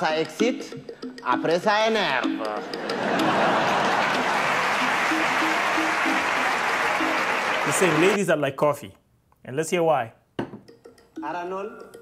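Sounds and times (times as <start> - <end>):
audience applauding: 3.1 - 8.2.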